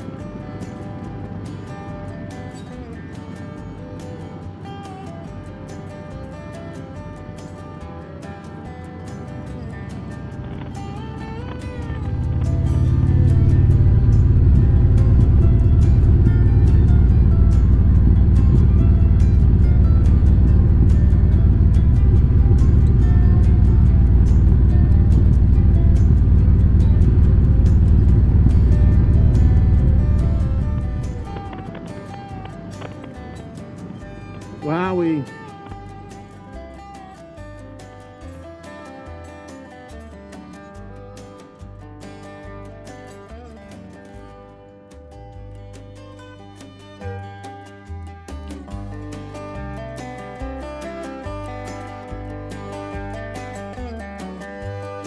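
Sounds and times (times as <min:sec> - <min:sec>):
background music: 0:00.0 - 0:55.0
motorcycle riding at speed: 0:07.3 - 0:36.6.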